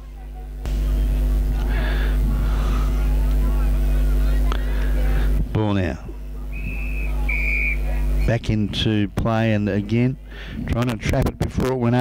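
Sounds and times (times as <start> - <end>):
constant low hum: 0.0 - 12.0
whistle blasts: 6.5 - 8.4.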